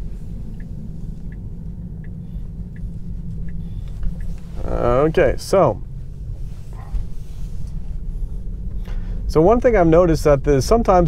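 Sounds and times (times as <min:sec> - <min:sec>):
low road rumble inside car: 0:00.0 - 0:11.0.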